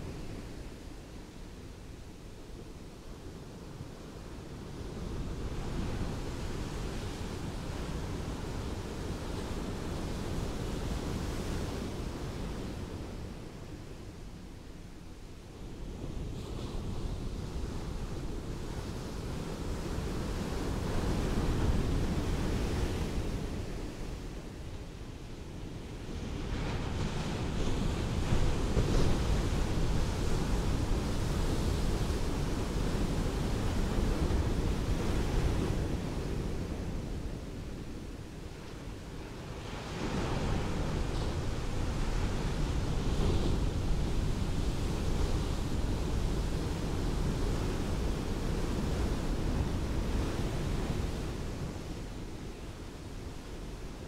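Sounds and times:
ocean waves breaking on beach: 0:26.0 - 0:54.0.

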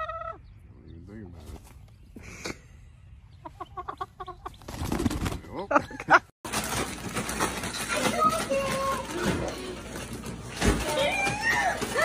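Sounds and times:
chicken clucking: 0:00.0 - 0:00.5, 0:03.3 - 0:04.7.

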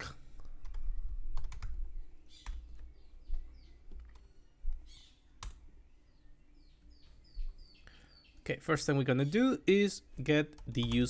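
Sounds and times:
keyboard keystroke clicks: 0:10.5 - 0:11.0.

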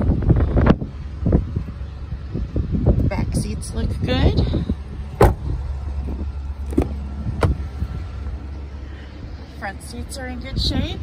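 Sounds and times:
steady low hum: 0:00.0 - 0:11.0
car door shutting: 0:05.1 - 0:07.7.

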